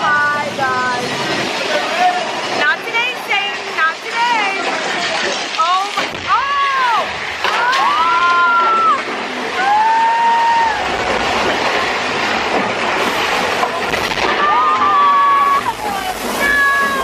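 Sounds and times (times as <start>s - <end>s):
ride rushing rumble: 0.0s - 5.2s
drawn-out high voices: 14.4s - 17.0s.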